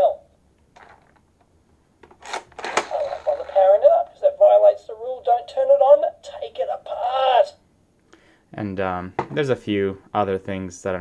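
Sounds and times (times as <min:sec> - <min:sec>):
recorded voice from small speaker: 0:00.0 - 0:00.4, 0:02.7 - 0:07.7.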